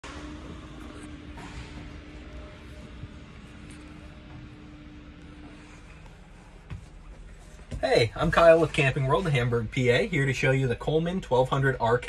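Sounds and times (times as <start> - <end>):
room noise hum and hiss: 0.1 - 12.0.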